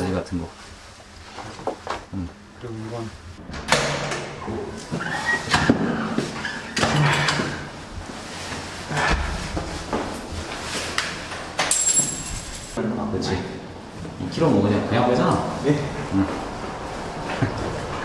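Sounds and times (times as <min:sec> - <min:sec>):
door opening and shutting: 0:03.4 - 0:07.7
clothing and bag rustling: 0:07.8 - 0:12.8.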